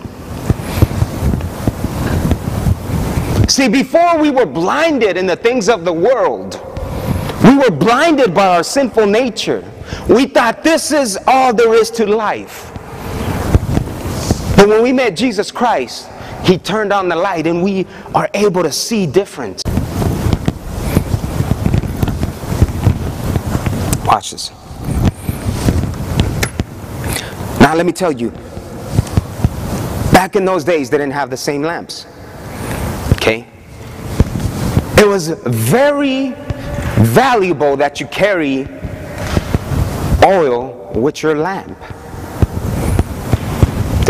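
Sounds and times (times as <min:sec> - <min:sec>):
low rumbling microphone noise: 0:00.0 - 0:44.0.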